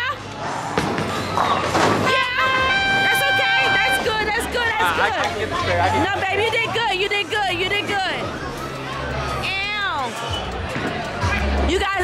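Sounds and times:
background music: 1.3s - 12.0s.

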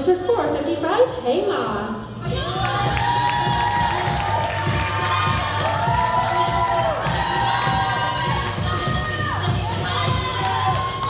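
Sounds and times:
audience cheering and screaming: 2.4s - 11.0s.

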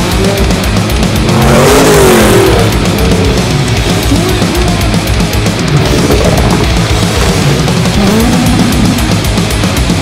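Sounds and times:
engine revving: 0.0s - 10.0s
loud heavy metal music: 0.0s - 10.0s.

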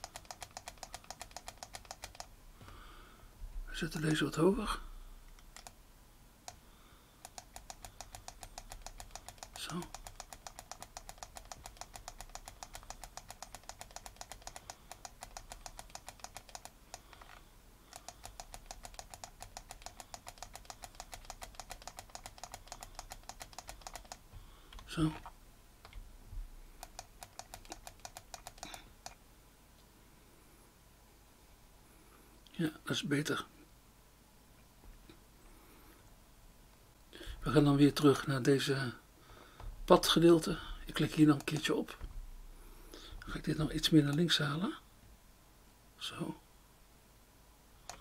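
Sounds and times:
mouse scroll wheel ticking: 0.0s - 2.3s, 5.3s - 5.8s, 7.2s - 26.0s, 26.8s - 29.2s, 40.9s - 41.7s.

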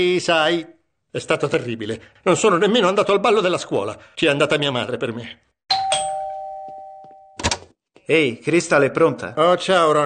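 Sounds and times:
two-tone doorbell chime: 5.7s - 7.5s.

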